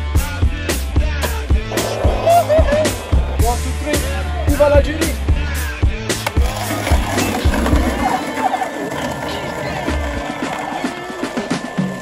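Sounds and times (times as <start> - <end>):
hip-hop music with deep bass: 0.0 - 12.0
skateboard rolling on concrete: 0.2 - 12.0
skateboard clacks: 6.1 - 12.0.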